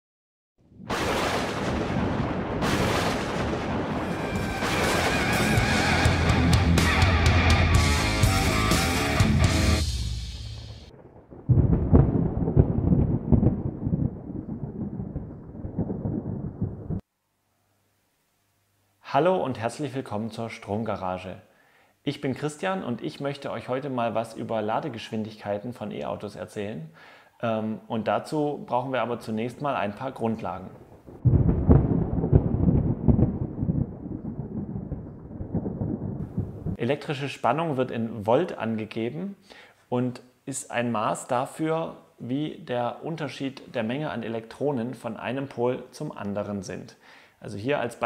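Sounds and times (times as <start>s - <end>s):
thunder clap and rumble: 0.8s - 6.8s, 10.4s - 17.0s, 30.6s - 36.8s.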